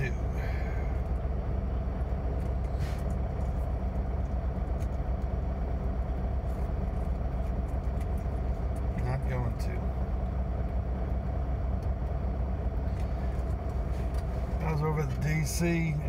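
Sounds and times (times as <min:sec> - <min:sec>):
diesel engine idling: 0:00.0 - 0:16.0.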